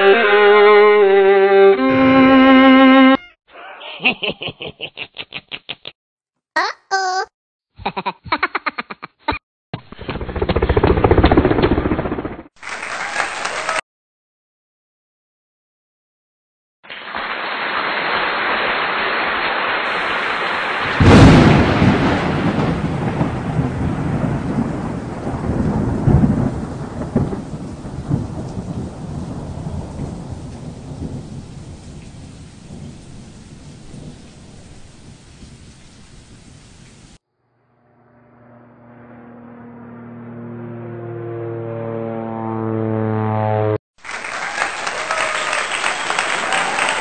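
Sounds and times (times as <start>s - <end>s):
steady rain hiss: 16.9s - 37.2s
loud thunderclap: 19.9s - 35.7s
rolling thunder rumbles: 20.0s - 37.2s.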